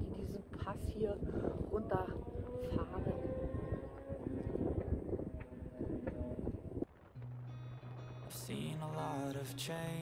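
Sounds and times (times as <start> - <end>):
motorcycle engines rumbling: 0.0 - 6.9.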